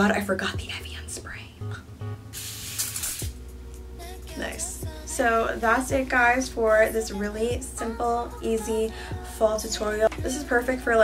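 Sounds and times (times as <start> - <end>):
aerosol spray hiss: 2.4 - 3.4.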